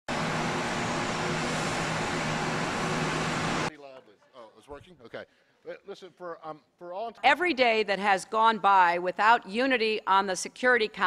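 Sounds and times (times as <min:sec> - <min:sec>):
low engine hum: 0:00.1 - 0:03.7.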